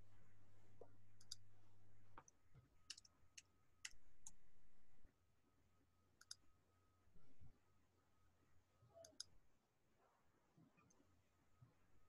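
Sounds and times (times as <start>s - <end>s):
small sharp clicks: 2.2s - 4.4s, 6.2s - 6.4s, 9.0s - 9.4s
low hum: 3.9s - 5.1s, 7.2s - 7.5s.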